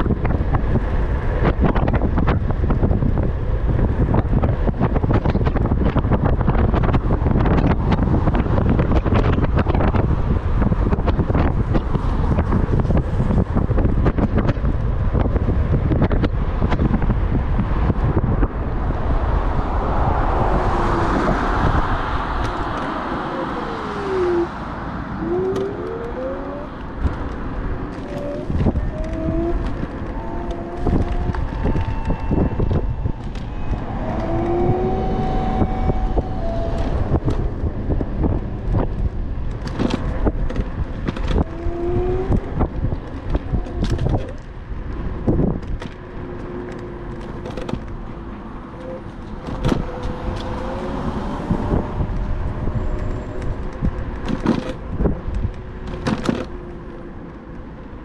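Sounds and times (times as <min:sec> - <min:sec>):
tyre and road noise: 0:00.0 - 0:58.0
wind rushing over microphone: 0:00.0 - 0:58.0
faint whines rising and falling: 0:27.9 - 0:39.4.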